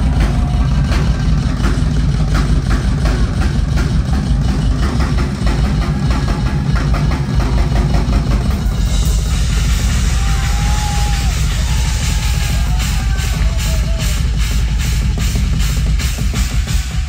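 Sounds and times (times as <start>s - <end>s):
drum hits: 0.0s - 17.0s.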